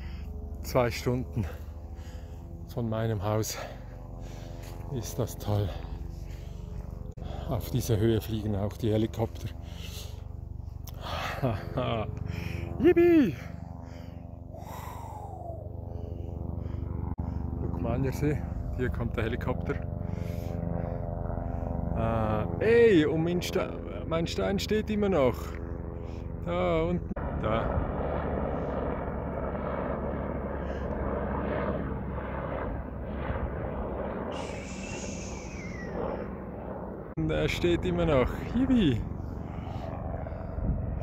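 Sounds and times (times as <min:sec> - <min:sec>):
helicopter rotor beat: 0:00.0 - 0:41.0
high turbine whine: 0:00.0 - 0:41.0.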